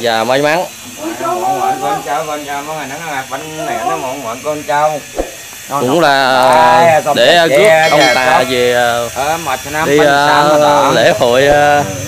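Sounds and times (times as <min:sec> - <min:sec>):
steady low hum: 0:00.0 - 0:12.0
man chanting a prayer: 0:06.8 - 0:12.0.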